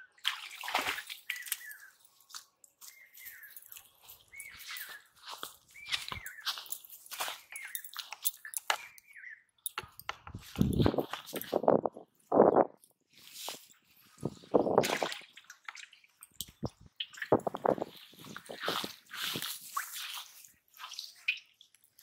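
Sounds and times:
fish flopping on grass: 17.5 - 21.1.

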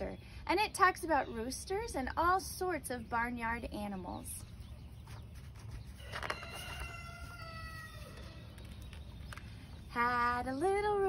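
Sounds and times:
rooster crowing: 6.0 - 8.4.

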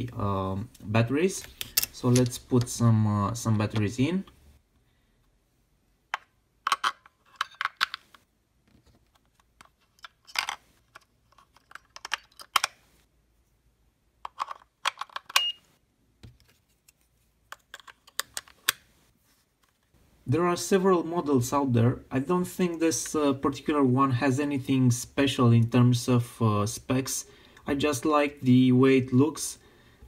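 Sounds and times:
batteries clicking and rattling: 9.2 - 12.8.

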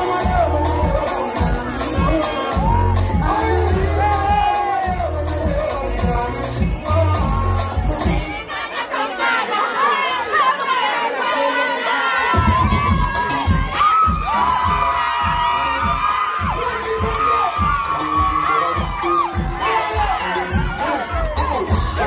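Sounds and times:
drum beat with hi-hat: 0.0 - 8.3, 12.3 - 22.0
backing track bass: 0.0 - 8.4, 12.4 - 22.0
crowd screaming and cheering: 0.0 - 22.0.

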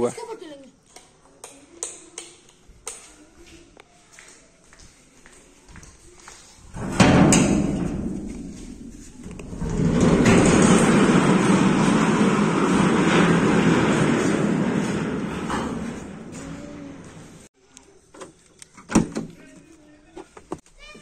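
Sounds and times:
wooden door scraping open: 6.7 - 17.5.

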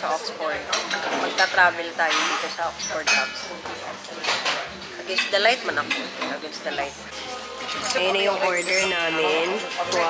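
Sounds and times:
clatter of plates and cutlery: 0.0 - 8.4.

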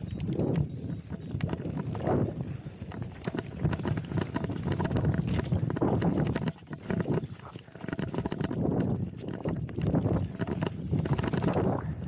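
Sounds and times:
bike clicks and knocks: 0.0 - 12.0
bike tyres rolling over dirt: 0.0 - 12.0.

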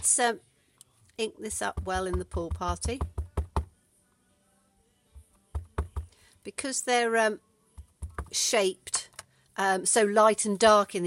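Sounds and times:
stamp tapping on ink pad: 1.5 - 3.7, 5.6 - 6.1, 7.8 - 8.4.

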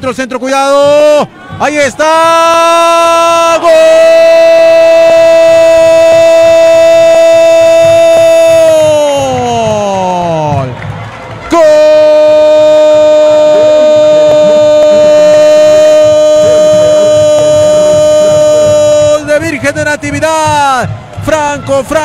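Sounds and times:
commentator crying out long vowel: 11.6 - 19.4.

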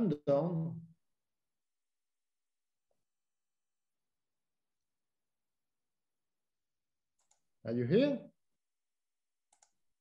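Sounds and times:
computer mouse clicks: 7.2 - 7.5, 9.5 - 9.9.

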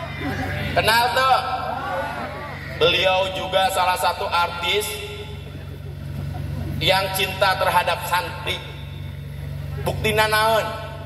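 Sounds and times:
man speaking over loudspeakers: 0.0 - 5.8, 6.8 - 11.0
low engine-like hum: 0.0 - 11.0.

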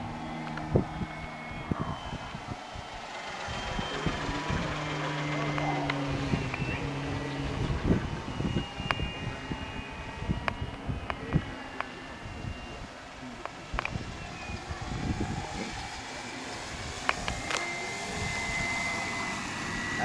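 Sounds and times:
model aircraft engine drone: 0.0 - 20.0
wind noise: 0.0 - 20.0.

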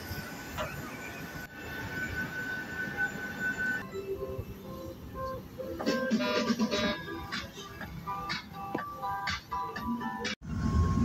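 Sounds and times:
high-pitched jet whine: 0.0 - 9.6, 10.4 - 11.0
jet engine low rumble: 10.4 - 11.0.

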